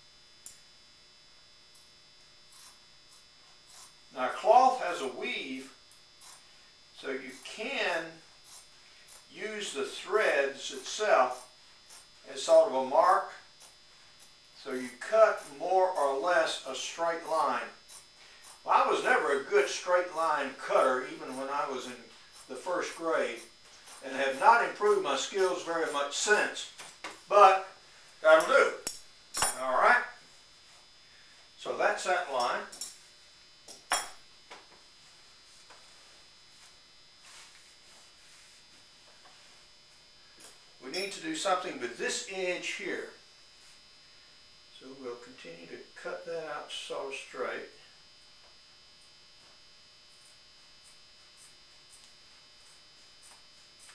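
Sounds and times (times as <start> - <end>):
man speaking indistinctly: 9.4 - 11.4, 12.3 - 13.4, 14.6 - 17.8, 18.6 - 23.4, 24.0 - 28.8, 29.5 - 30.2, 31.6 - 32.8, 40.8 - 43.1
sharp click: 28.8 - 29.6.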